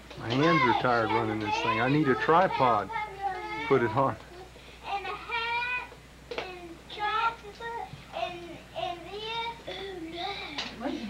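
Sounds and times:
child singing: 0.4 - 10.6.

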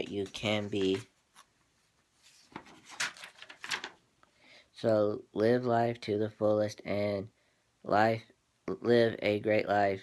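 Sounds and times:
soft rustling: 0.0 - 4.0.

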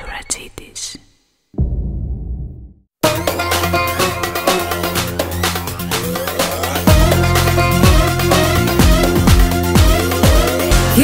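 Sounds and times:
deep boom: 1.6 - 2.8.

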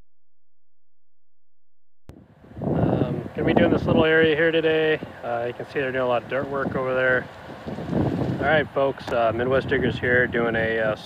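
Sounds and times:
wind rumbling on microphone: 2.1 - 11.0.

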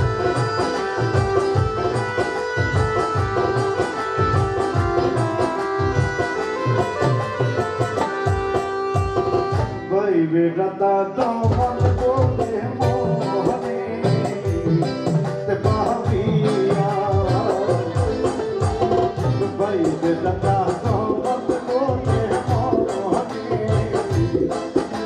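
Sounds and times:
hand drum beat: 0.0 - 9.8, 11.2 - 25.0
bass guitar: 0.0 - 10.1, 11.3 - 25.0
keyboard melody: 0.0 - 25.0.

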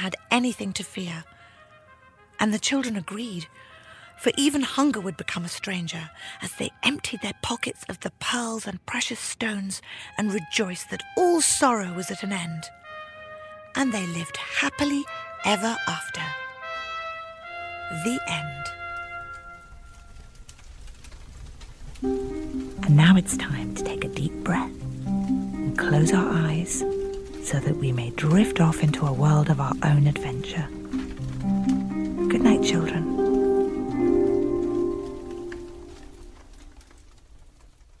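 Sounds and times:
soft held music chord: 22.0 - 36.5.

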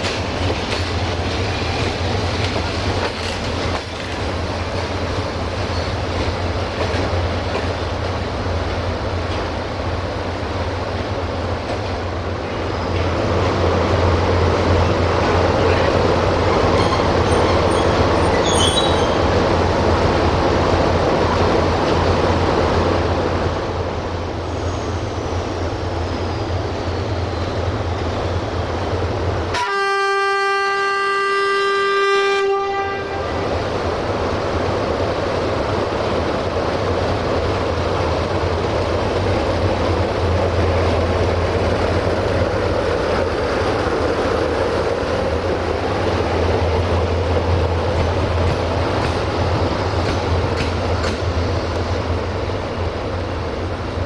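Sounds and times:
locomotive diesel engine humming: 0.0 - 54.0
locomotive horn blast: 29.5 - 33.5.

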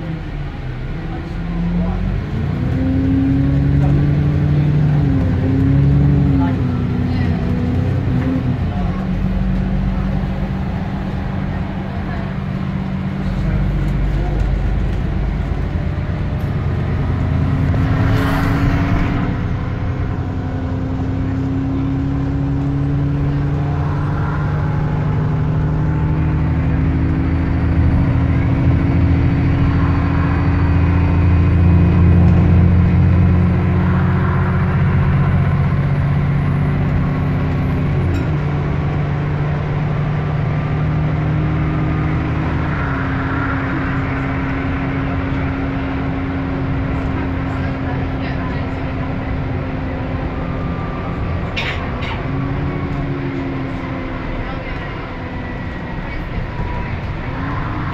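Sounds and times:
bus diesel engine drone: 0.0 - 57.9
road noise: 0.0 - 57.9.

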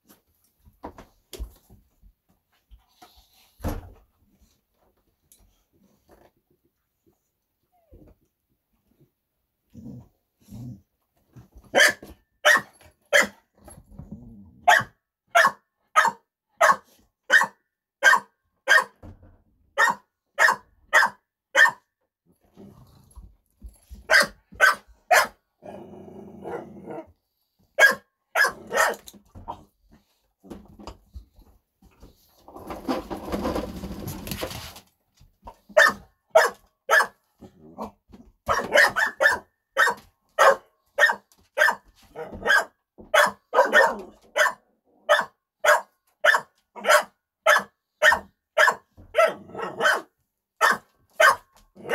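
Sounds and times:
dog barking: 11.7 - 13.4, 14.6 - 19.0, 19.8 - 21.9, 24.1 - 25.4, 27.8 - 29.0, 35.8 - 37.2, 38.5 - 51.9
dog growling: 25.6 - 27.1.

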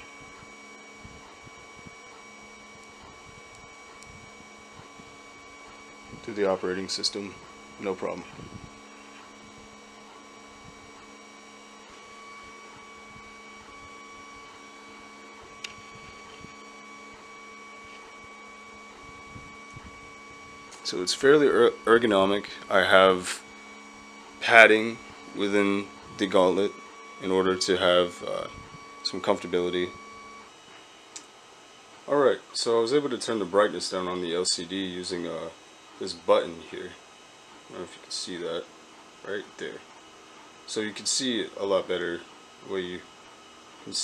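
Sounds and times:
thin high whine: 0.0 - 31.3
electrical hum: 0.0 - 44.0.

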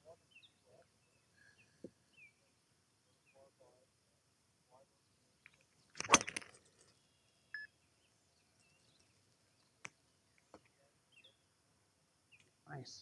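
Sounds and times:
faint bird chirps: 0.0 - 3.8, 4.7 - 11.6.

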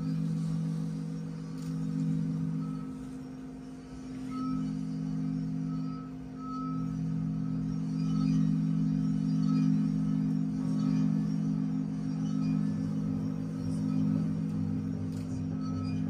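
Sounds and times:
short high ringing tones: 0.0 - 16.0
sustained low drone: 0.0 - 16.0.

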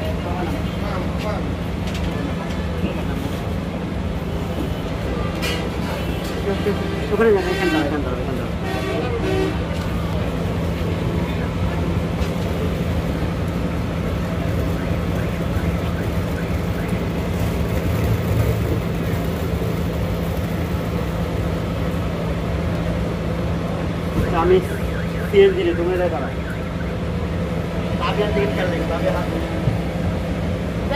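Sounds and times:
bus engine idling: 0.0 - 30.9
voices and movement: 0.0 - 30.9.

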